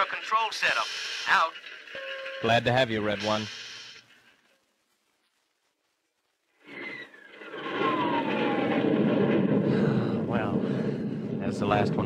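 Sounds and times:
falling engine whine: 7.3 - 12.0.

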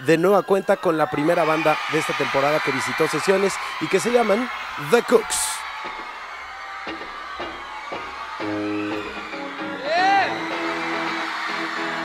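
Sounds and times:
voice whoop: 0.7 - 12.0.

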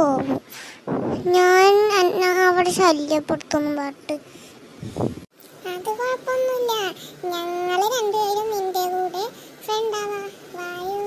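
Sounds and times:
child-like voice singing: 5.6 - 11.0.

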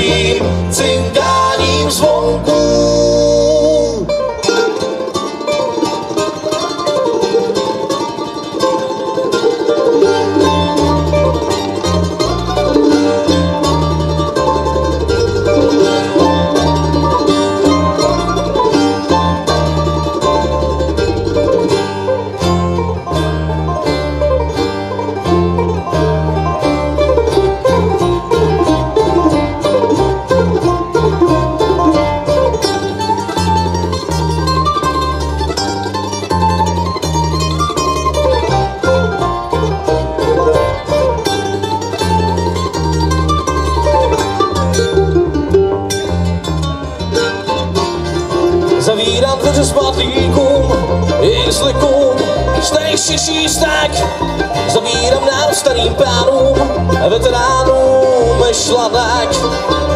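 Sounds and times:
bluegrass band playing: 0.0 - 59.9
upright bass plucking: 0.0 - 59.9.

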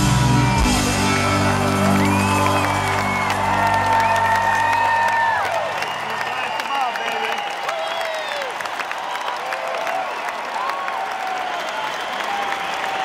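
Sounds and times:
stadium crowd cheering: 0.0 - 13.0
people clapping: 0.4 - 13.0.

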